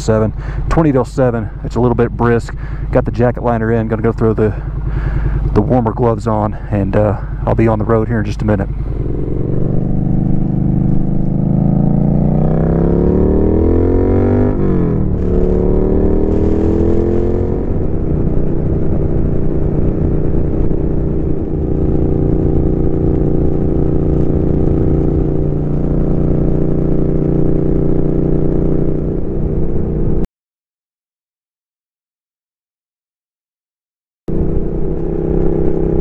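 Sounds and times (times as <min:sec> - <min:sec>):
motorcycle engine accelerating: 0:00.0 - 0:30.3, 0:34.3 - 0:36.0.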